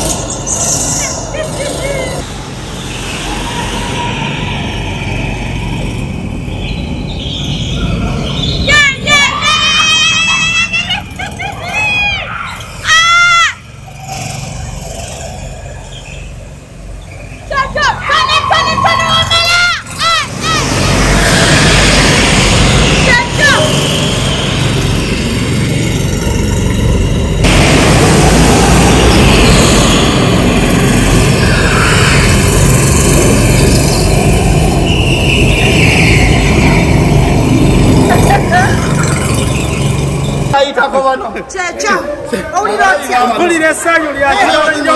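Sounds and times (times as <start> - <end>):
go-kart engines running: 0.0 - 44.9
people whooping and shouting: 3.1 - 6.4, 7.5 - 14.4, 17.5 - 24.8.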